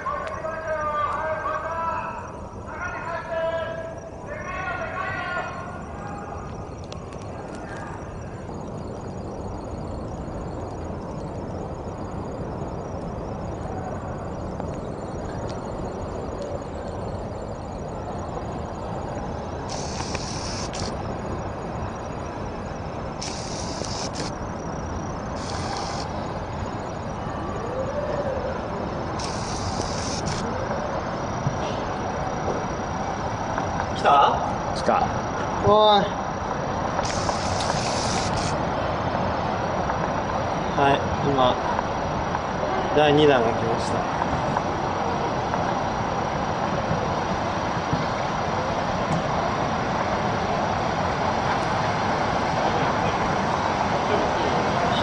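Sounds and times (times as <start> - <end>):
short bursts of high hiss: 19.6 - 21.0, 23.2 - 24.5, 25.3 - 26.4, 29.2 - 30.5, 37.0 - 38.6
waves surging ashore: 44.7 - 55.0.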